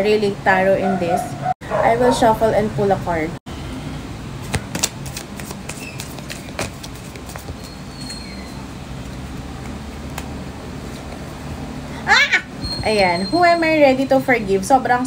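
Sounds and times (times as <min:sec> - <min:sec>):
cards being shuffled: 0:04.4 - 0:07.8.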